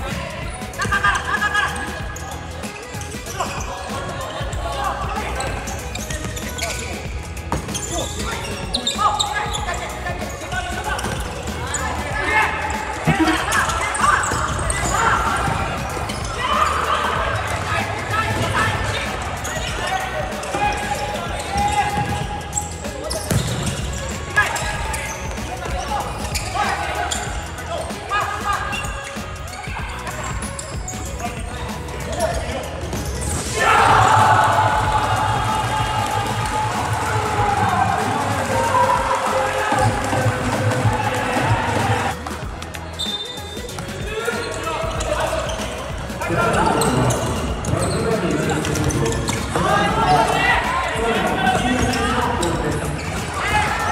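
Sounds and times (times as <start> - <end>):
shouting and cheering: 0.0 - 53.9
players shouting: 7.6 - 42.4, 43.2 - 53.9.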